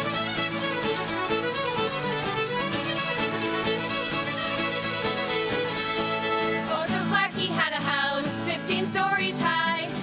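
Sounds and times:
fiddles playing lively tune: 0.0s - 10.0s
strummed acoustic guitar: 0.0s - 10.0s.

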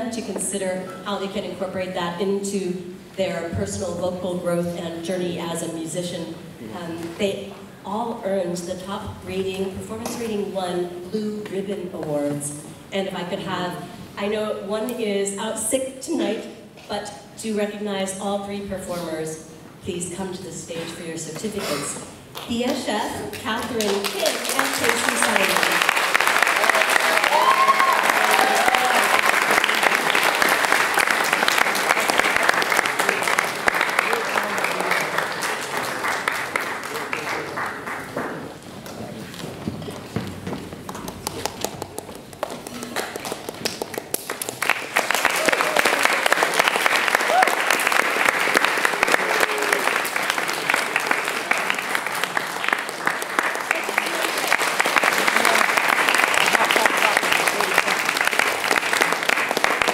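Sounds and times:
audience applauding: 23.8s - 38.6s, 40.9s - 59.9s.

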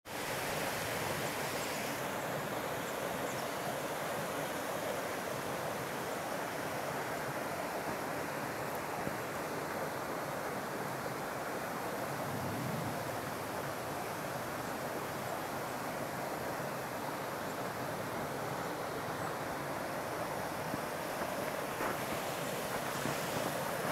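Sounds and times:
creek rushing over rocks: 0.1s - 23.9s.

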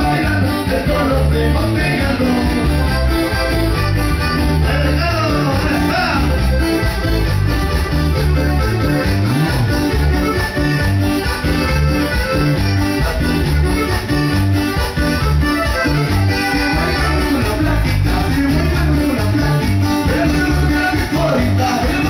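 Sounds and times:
accordion melody: 0.0s - 22.0s
bass line and rhythm: 0.0s - 22.0s.

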